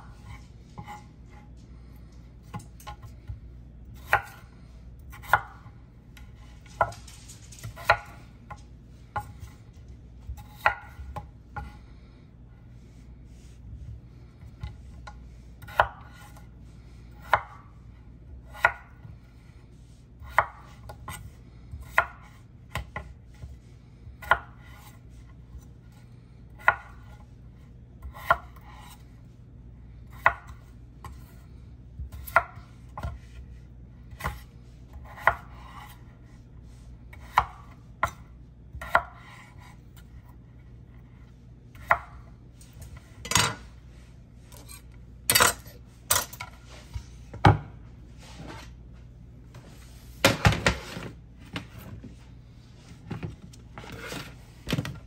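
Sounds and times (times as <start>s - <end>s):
low steady hum: 0.0s - 55.0s.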